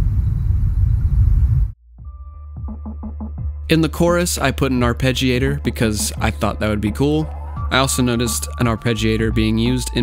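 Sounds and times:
heavy low rumble: 0.0s - 1.8s.

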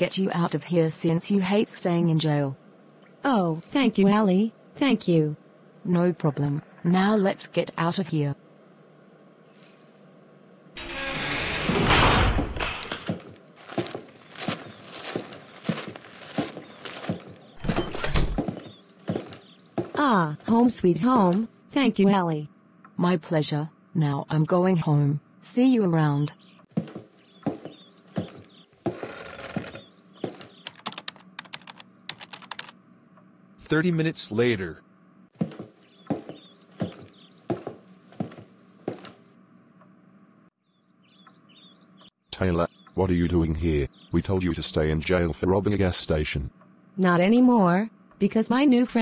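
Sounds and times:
sliding cell door rumbling: 10.8s - 13.2s
rustling noise: 13.0s - 17.6s.

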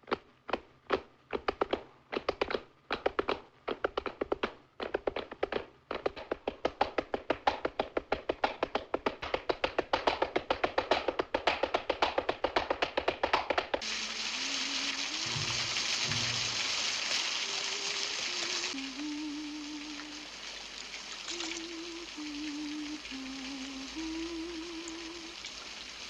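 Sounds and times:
group clapping hands: 6.6s - 13.8s
steady hiss: 13.8s - 26.0s.

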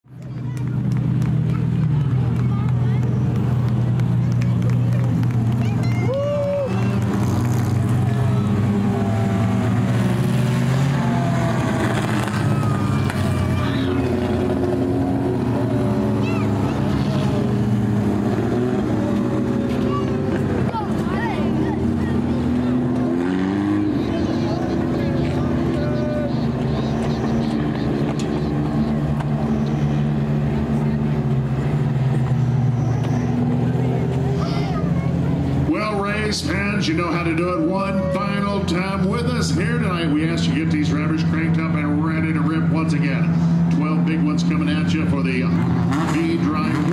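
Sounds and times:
race car engines running: 0.0s - 46.9s.

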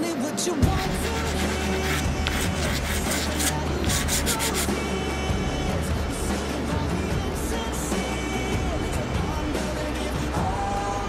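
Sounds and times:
background music: 0.0s - 11.0s
drawing strokes scratching paper: 0.8s - 4.7s.

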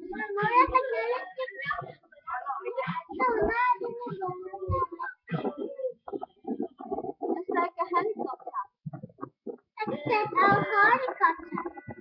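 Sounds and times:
child singing: 0.1s - 5.8s, 9.8s - 12.0s.

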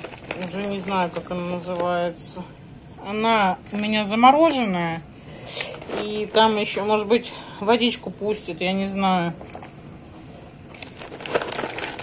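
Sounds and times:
frozen vegetables crackling in bowl: 0.0s - 2.4s, 3.5s - 4.8s, 5.5s - 7.0s, 10.7s - 12.0s.

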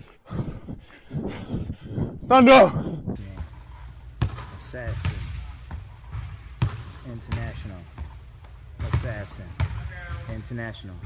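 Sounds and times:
basketball bouncing on wooden floor: 4.2s - 10.5s.

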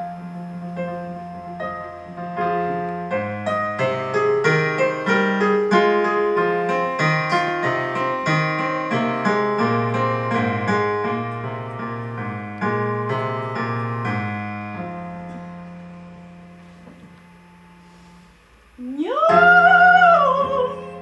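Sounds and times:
digital piano playing: 0.0s - 18.1s, 18.8s - 21.0s.

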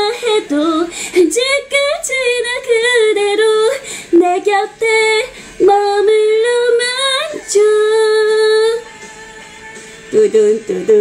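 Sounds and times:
woman singing: 0.0s - 9.0s, 10.1s - 11.0s.

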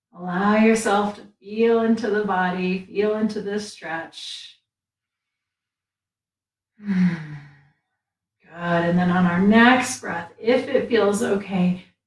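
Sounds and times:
woman speaking: 0.2s - 4.5s, 8.5s - 11.8s.

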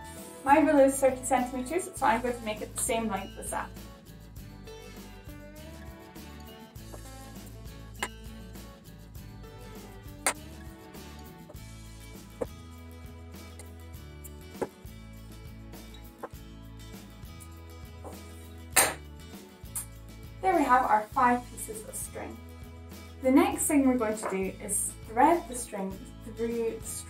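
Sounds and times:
background music with bass: 0.0s - 27.0s.

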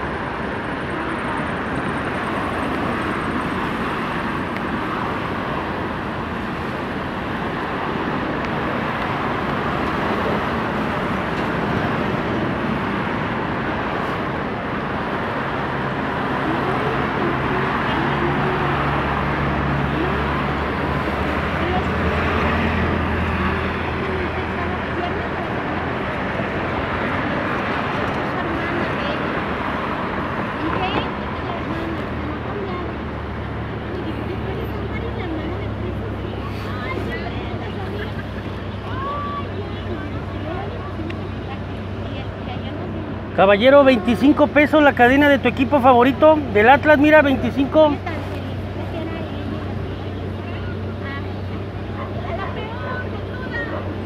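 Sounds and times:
heavy vehicle engine hum: 0.0s - 54.0s
road traffic: 0.0s - 54.0s
people talking indistinctly: 15.4s - 54.0s.

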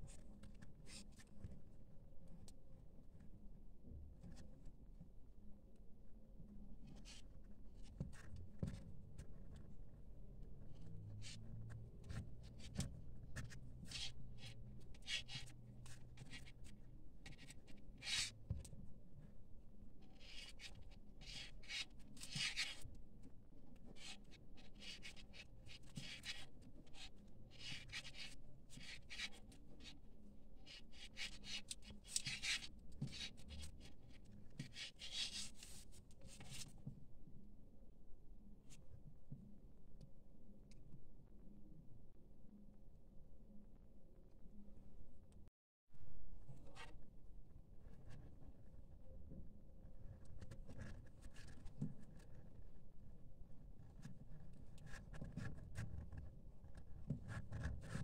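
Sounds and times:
paper yarn rustling and scratching: 6.8s - 18.8s, 20.0s - 30.0s, 30.6s - 37.0s, 50.0s - 52.7s.

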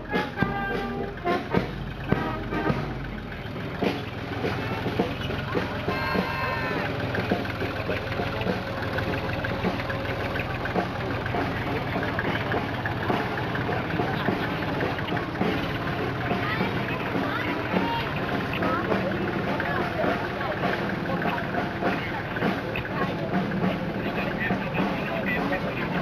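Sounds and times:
music: 0.0s - 26.0s
tractor diesel engine running: 0.0s - 26.0s
voices: 0.0s - 26.0s.

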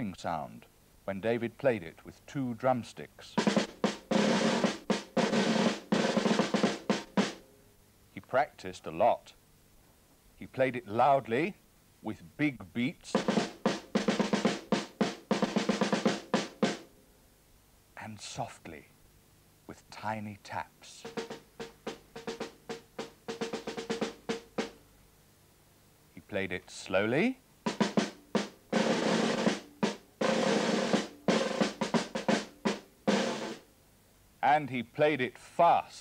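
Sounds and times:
big drum beaten: 3.4s - 7.4s, 13.1s - 16.8s, 21.0s - 24.8s, 27.7s - 33.6s.

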